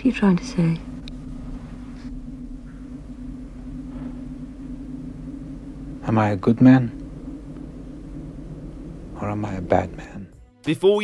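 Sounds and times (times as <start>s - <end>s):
low droning hum: 0.0s - 10.5s
low rumble: 0.0s - 10.5s.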